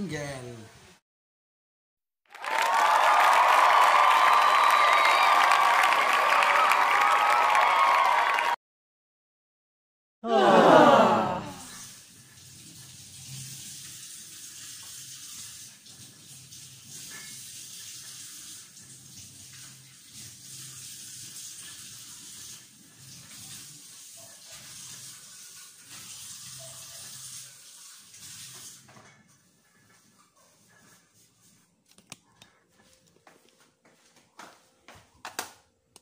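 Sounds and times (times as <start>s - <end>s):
tap water running into sink: 11.8s - 29.3s.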